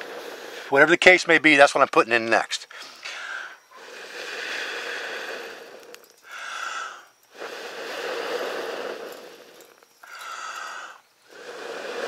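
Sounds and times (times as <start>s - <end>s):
airy rush of blowing breath: 0.0s - 0.8s, 2.7s - 12.0s.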